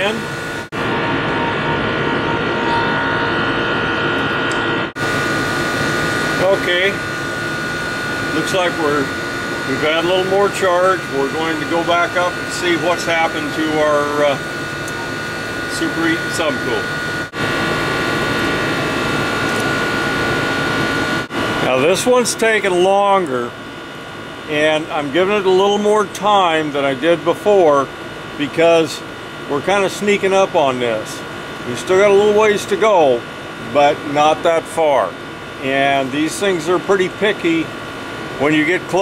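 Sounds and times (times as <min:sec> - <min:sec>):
air conditioner hum and whine: 0:00.0 - 0:39.0.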